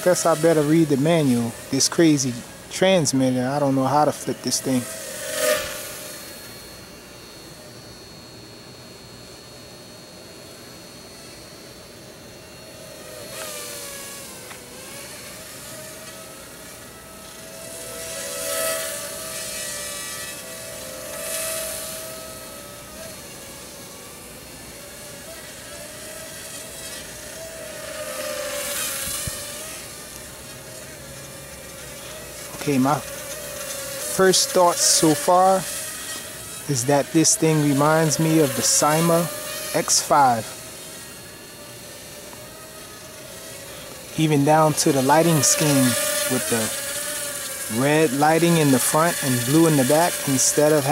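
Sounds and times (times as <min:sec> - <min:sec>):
quadcopter motors whining: 0:00.0 - 0:50.9.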